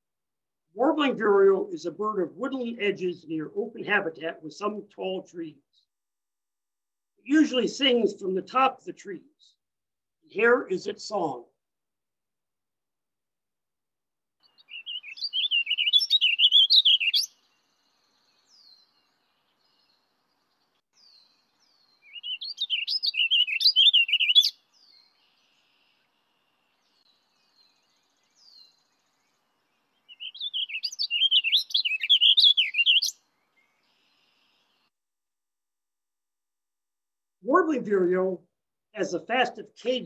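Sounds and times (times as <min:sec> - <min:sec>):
bird singing warbled phrases: 0:00.8 - 0:05.9, 0:14.4 - 0:34.9.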